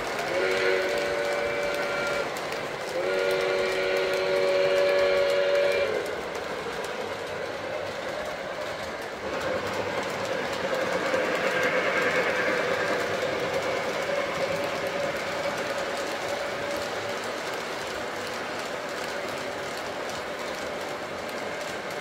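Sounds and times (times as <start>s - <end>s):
model train wheels clicking: 0.0s - 22.0s
model train steam whistle: 0.1s - 6.2s.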